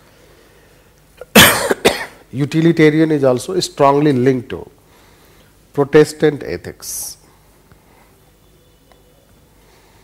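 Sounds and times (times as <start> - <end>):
man coughing: 1.2 - 2.2.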